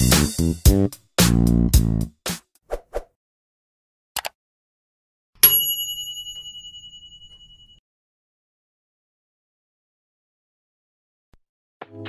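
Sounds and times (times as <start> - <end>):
notification bell ding: 5.4 - 7.8.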